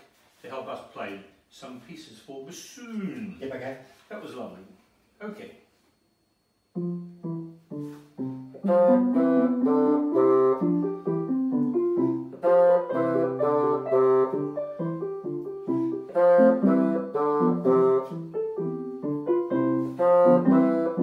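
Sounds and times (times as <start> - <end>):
keyboard piano accompaniment: 6.7 - 21.0
bassoon melody: 6.8 - 21.0.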